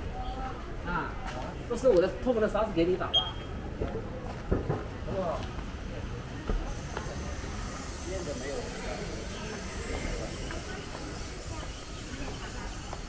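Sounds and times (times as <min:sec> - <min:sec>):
voices of passers-by: 0:00.0 - 0:13.0.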